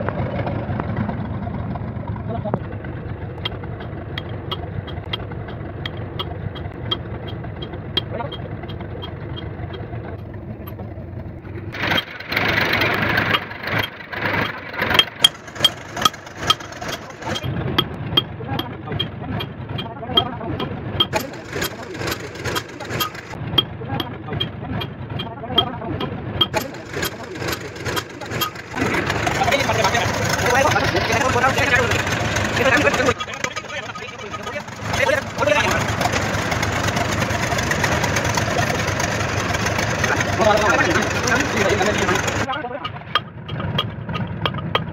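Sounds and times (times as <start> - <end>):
engine running: 0.0 - 44.9
men talking: 2.2 - 2.7, 8.0 - 8.6, 16.9 - 17.5, 18.4 - 23.0, 23.8 - 36.2, 36.9 - 39.2, 39.9 - 43.1.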